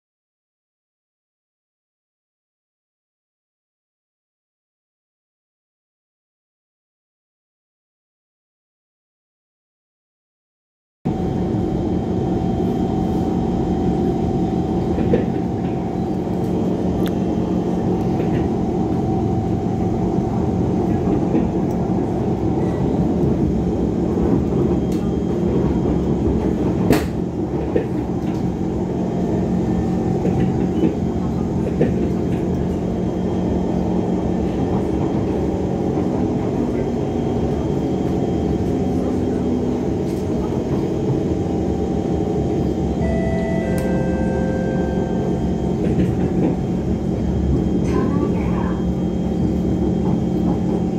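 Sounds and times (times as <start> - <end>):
train running hum and whine: 11.1 - 50.9.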